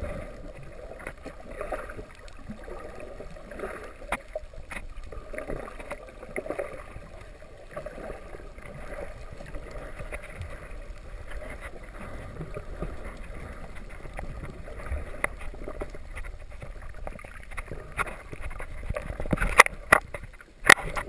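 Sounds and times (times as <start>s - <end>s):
muffled underwater water noise: 0.0s - 21.0s
sharp underwater clicks and crackles: 0.0s - 21.0s.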